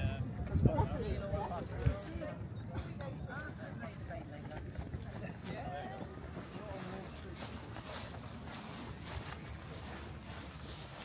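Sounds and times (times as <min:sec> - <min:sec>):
passersby talking: 0:00.0 - 0:11.0
footsteps on paved path: 0:02.7 - 0:11.0.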